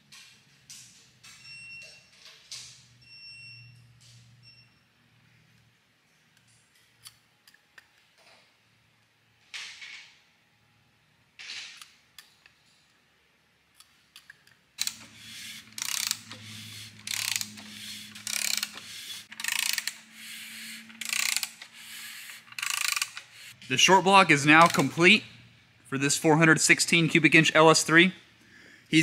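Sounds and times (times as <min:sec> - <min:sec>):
hand ratchet clicking: 0:14.8 - 0:23.6, 0:24.6 - 0:24.9.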